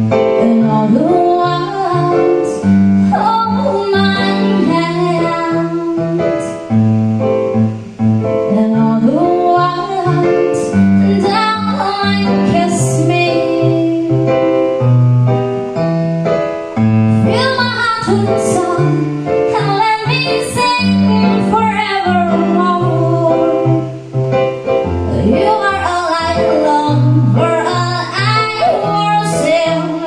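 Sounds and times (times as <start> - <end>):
electronic keyboard chords: 0.0 - 30.0
woman singing: 0.3 - 6.7, 8.5 - 14.8, 17.2 - 24.1, 25.1 - 30.0.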